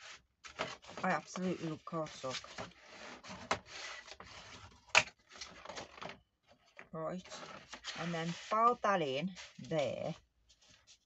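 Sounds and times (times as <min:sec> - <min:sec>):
bone folder scraping card: 0:00.0 - 0:06.0.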